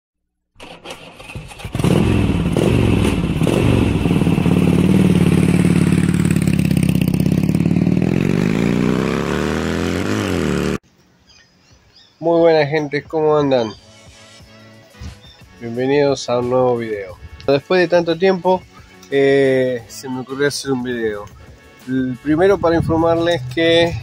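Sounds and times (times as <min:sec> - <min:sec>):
motorcycle engine: 0:00.6 - 0:10.8.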